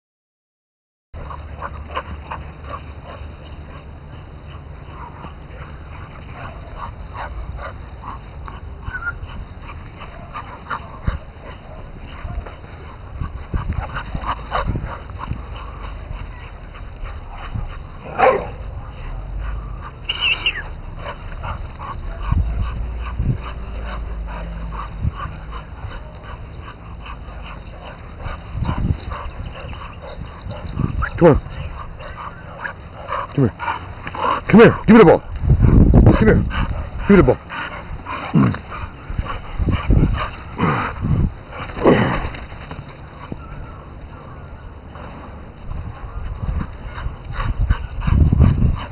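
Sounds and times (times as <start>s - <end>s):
dog barking: 18.1s - 18.6s
dog yelping: 20.0s - 20.8s.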